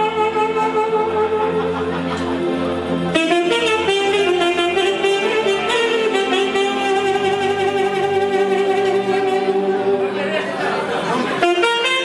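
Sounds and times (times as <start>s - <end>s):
electronic keyboard accompaniment: 0.0s - 12.0s
saxophone holding long note: 0.0s - 12.0s.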